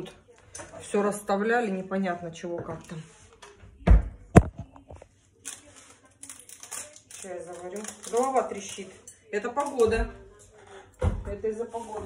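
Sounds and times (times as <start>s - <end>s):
crinkling crackling rustle: 5.0s - 9.8s.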